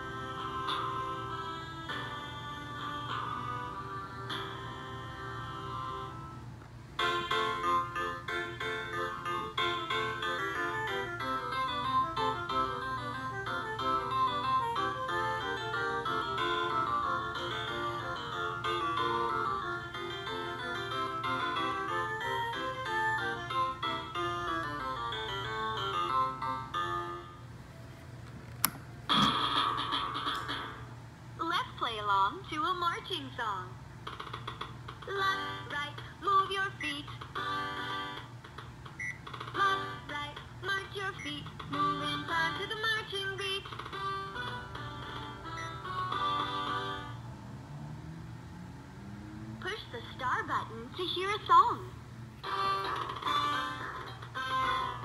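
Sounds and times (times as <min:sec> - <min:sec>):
electronic toy melody: 0:00.0 - 0:06.4, 0:07.0 - 0:27.5, 0:37.3 - 0:38.4, 0:41.1 - 0:47.2, 0:52.4 - 0:55.0
toy switch click: 0:28.6 - 0:28.8.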